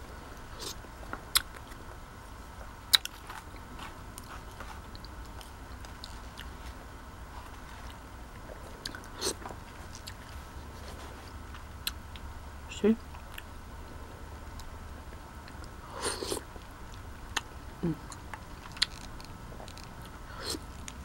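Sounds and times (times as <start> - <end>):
chewing soft food: 0.3 - 12.3, 14.5 - 21.0.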